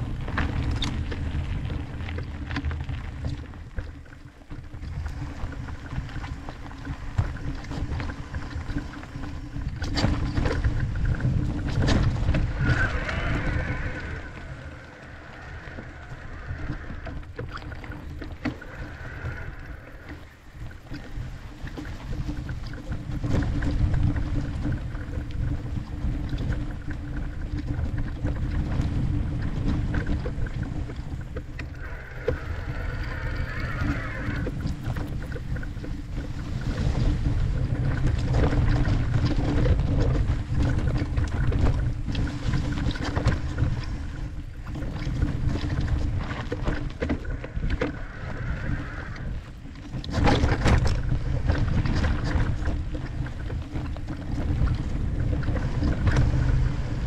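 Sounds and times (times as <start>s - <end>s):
bike rattling and knocking: 0.0s - 33.4s, 34.4s - 48.0s, 49.3s - 57.0s
tyres rolling over dirt trail: 0.0s - 57.0s
wind buffeting microphone: 0.0s - 57.0s.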